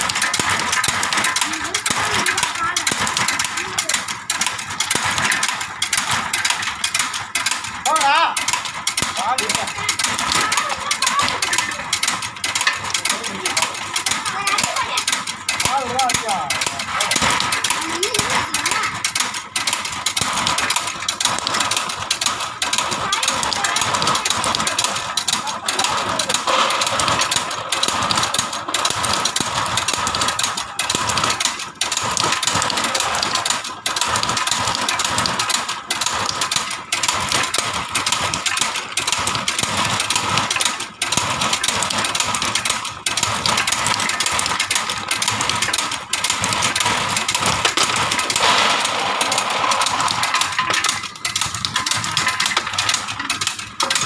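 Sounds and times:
cutting machine running: 0.0 - 54.0.

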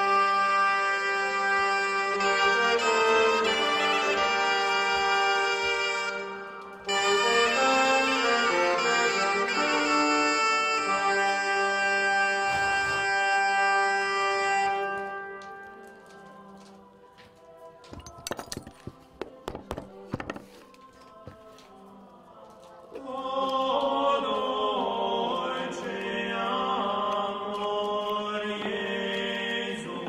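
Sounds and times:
instrumental music with held notes: 0.0 - 21.7
hand tools tapping on workbench: 17.9 - 20.7.

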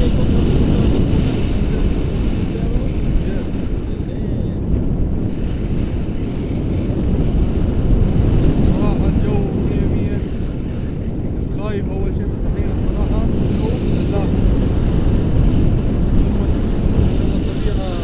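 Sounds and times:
faint voices: 0.0 - 4.7, 8.4 - 14.5
wind buffeting microphone: 0.0 - 18.0.

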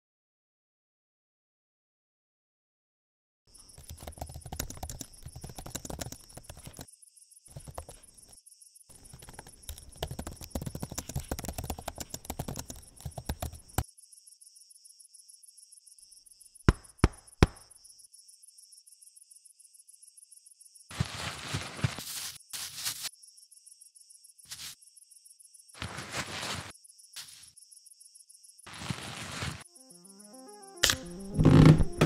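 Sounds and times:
crickets chirping: 3.5 - 30.8
laptop keyboard typing: 3.8 - 6.9, 7.5 - 8.3, 8.9 - 13.8.

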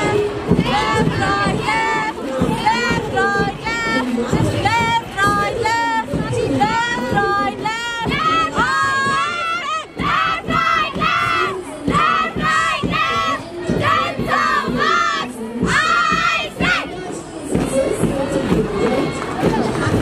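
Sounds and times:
crowd noise: 0.0 - 20.0
young women chanting in unison: 0.0 - 20.0.

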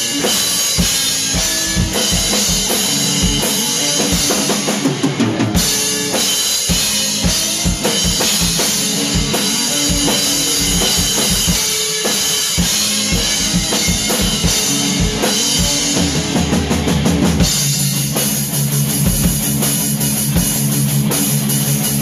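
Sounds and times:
electric guitar chords: 0.0 - 22.0.

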